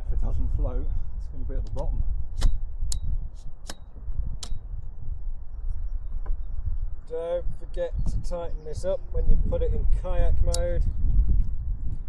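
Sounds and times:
wind buffeting microphone: 0.0s - 12.0s
sharp clicks: 1.7s - 4.7s, 10.5s - 10.7s.

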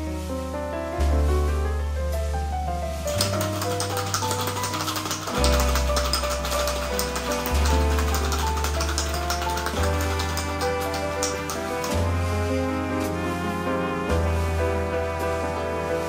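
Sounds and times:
piano background music: 0.0s - 16.0s
ice rattling in cocktail shaker: 3.1s - 11.9s.

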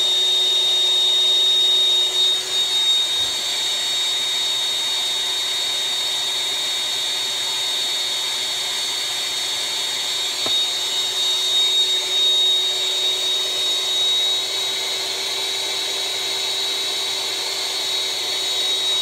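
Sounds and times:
motor drone: 0.0s - 19.0s.

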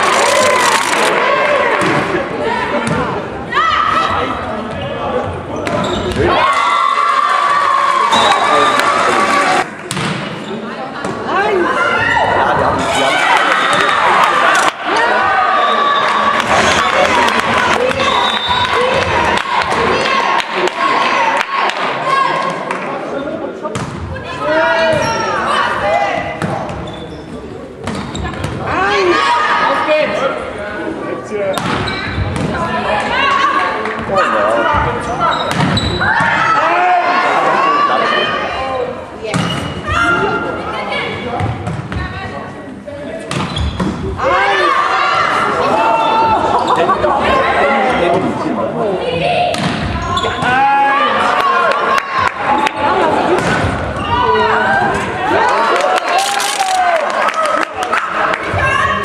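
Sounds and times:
high-pitched cheer: 55.3s - 58.0s.

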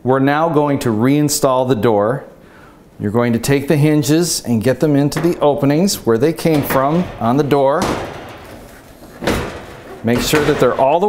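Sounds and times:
oven hinge metal clunk: 5.0s - 11.0s.

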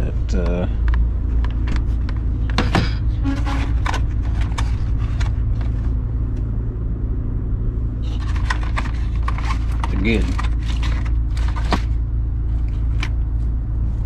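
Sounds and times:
low rumble: 0.0s - 14.0s.

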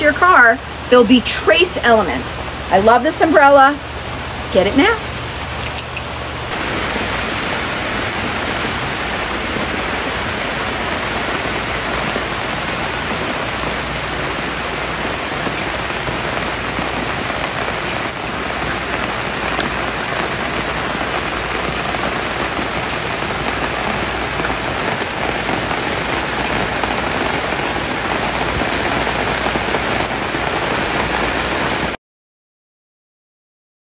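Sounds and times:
rain on an umbrella: 0.0s - 32.0s.

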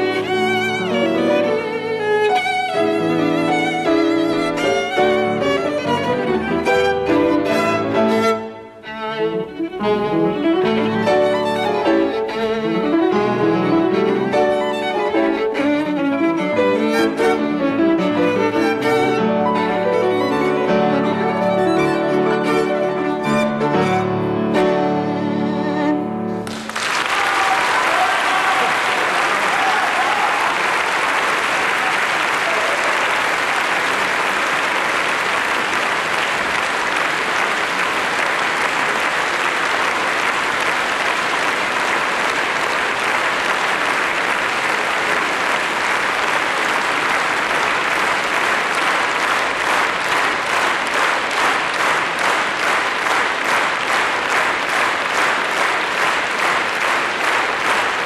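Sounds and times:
audience applauding: 0.0s - 24.0s, 25.8s - 58.0s.

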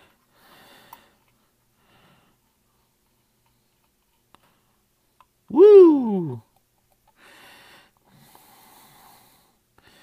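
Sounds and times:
faint breaths close to microphone: 0.0s - 5.3s, 7.0s - 10.0s.

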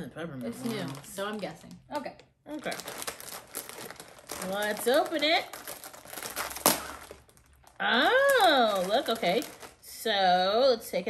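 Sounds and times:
plastic package crinkling: 0.4s - 9.9s
sharp plastic crackle: 0.5s - 10.0s.

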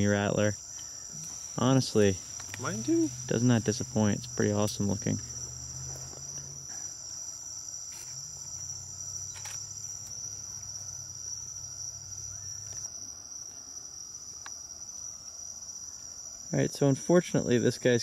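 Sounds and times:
insects singing: 0.0s - 18.0s.

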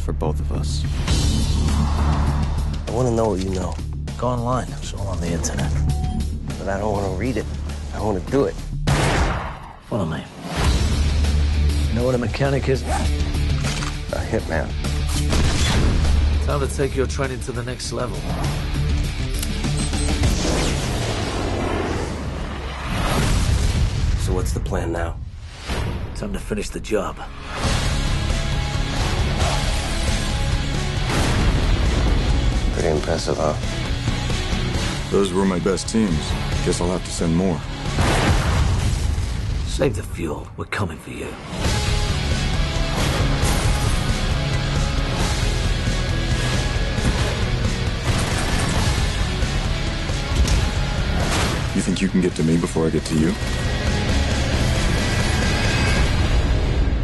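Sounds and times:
dramatic trailer music: 0.0s - 57.0s.

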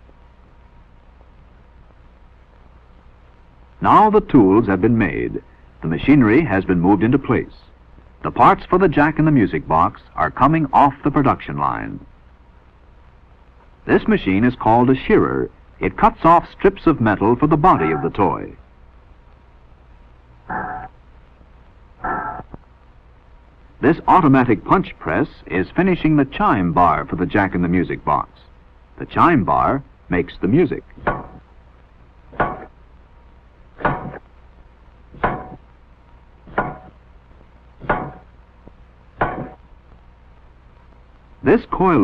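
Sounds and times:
low machine hum: 0.0s - 42.0s.

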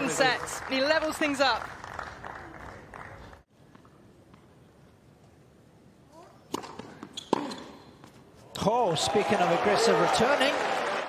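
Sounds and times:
racket striking tennis ball: 6.5s - 8.2s.

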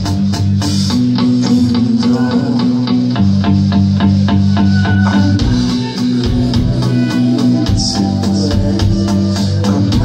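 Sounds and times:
drum beat: 0.0s - 2.8s, 4.1s - 10.0s
bass line: 0.0s - 10.0s
electric guitar: 0.0s - 10.0s.

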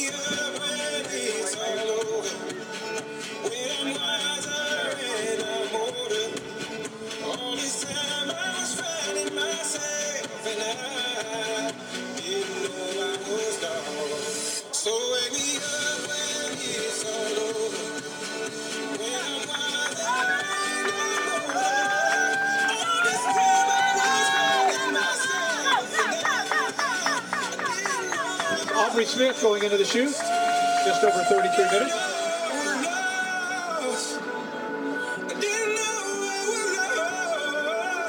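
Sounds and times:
song with singing: 0.0s - 38.0s.

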